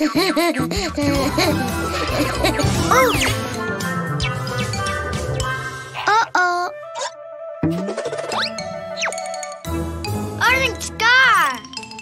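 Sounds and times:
light children's music: 0.0 - 12.0.

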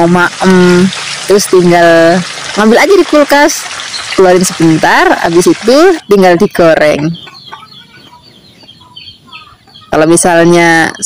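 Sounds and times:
oil popping: 0.0 - 6.0
chicken sizzling in oil: 0.0 - 7.1.

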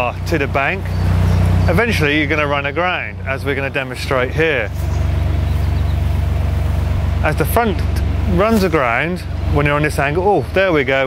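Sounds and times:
diesel boat engine throbbing: 0.0 - 11.0.

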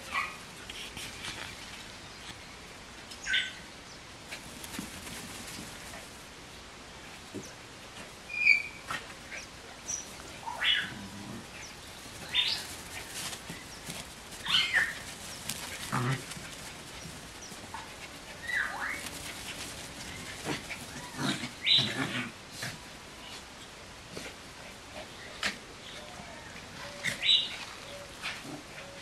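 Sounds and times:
puppies yipping and squealing: 9.9 - 22.1.

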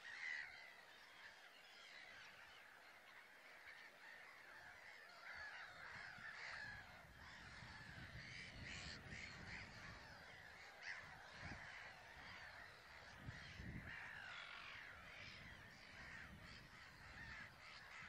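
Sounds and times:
flock of birds chattering: 0.0 - 18.0.

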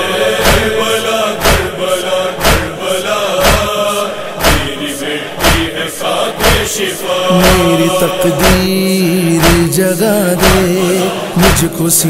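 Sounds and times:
voices chanting: 0.0 - 12.0
chest-beating thumps: 1.4 - 1.8, 2.4 - 2.8, 3.4 - 3.8, 4.4 - 4.8, 5.4 - 5.8, 6.4 - 10.8, 11.4 - 11.8.

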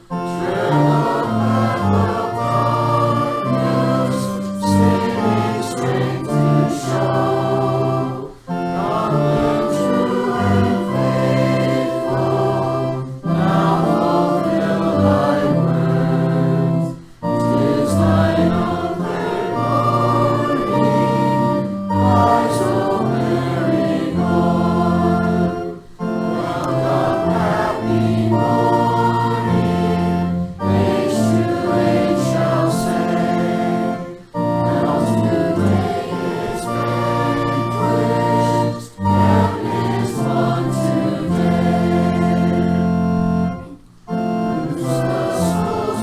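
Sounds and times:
congregation singing a hymn: 0.0 - 46.0
sustained organ: 0.0 - 46.0.

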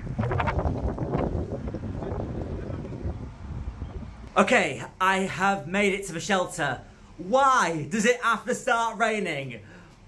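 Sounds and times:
wind buffeting microphone: 0.0 - 4.4.

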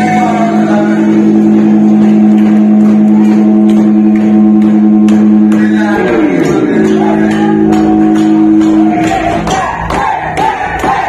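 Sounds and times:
sustained electric guitar chord: 0.0 - 9.0.

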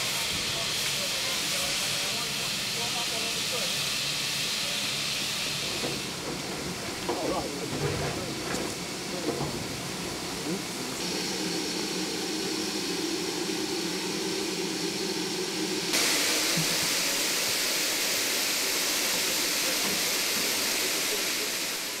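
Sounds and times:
locomotive steam hissing: 0.0 - 22.0.

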